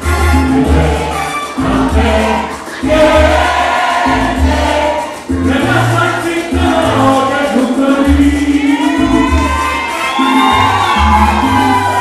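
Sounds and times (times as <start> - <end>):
bass line: 0.0 - 12.0
salsa band playing: 0.0 - 12.0
man singing: 5.2 - 9.7.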